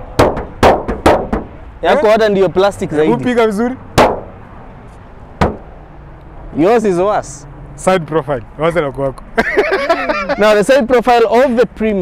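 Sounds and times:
man speaking: 1.8s - 3.8s
loud sharp crack: 4.0s - 4.3s.

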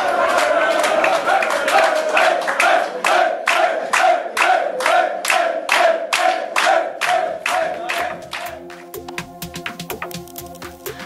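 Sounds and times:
men chanting: 0.0s - 8.7s
rhythmic clapping: 0.0s - 11.0s
electronic music with steady beat: 7.6s - 11.0s.

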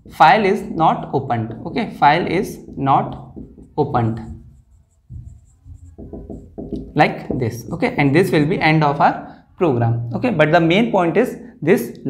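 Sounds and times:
marker scratching on whiteboard: 1.9s - 8.4s.

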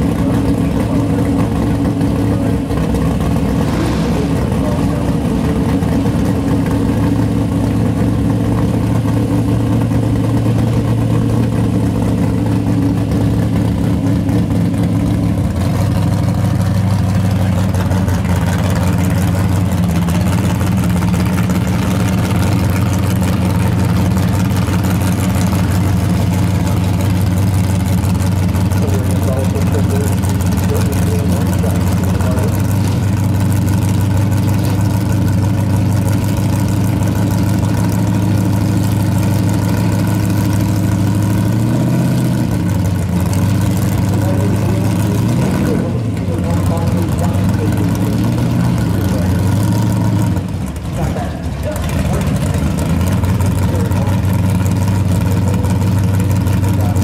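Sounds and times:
car engine idling: 0.0s - 57.0s.

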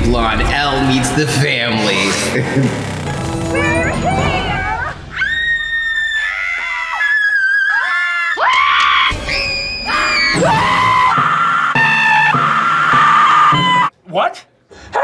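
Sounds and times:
people screaming and squealing: 3.6s - 13.9s.

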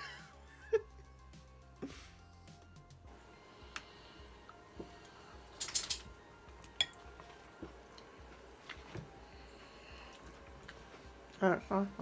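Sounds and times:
cutlery clinking on a plate: 6.8s - 7.0s.

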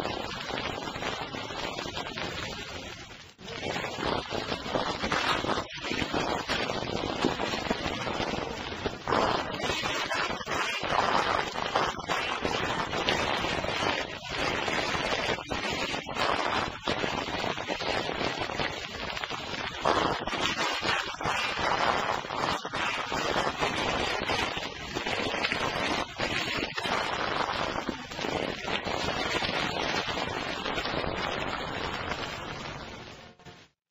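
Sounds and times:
record crackle and hiss: 0.0s - 33.9s.

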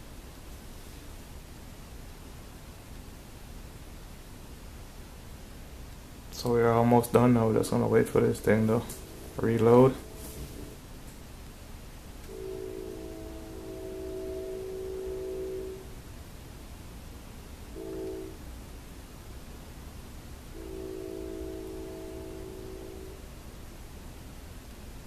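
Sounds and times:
train horn blasts: 8.3s - 10.8s, 12.3s - 16.0s, 17.7s - 18.6s, 20.5s - 23.3s.

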